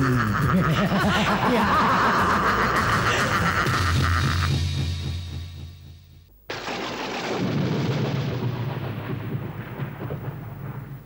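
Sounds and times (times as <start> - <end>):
rolling thunder rumble: 6.6 - 11.0.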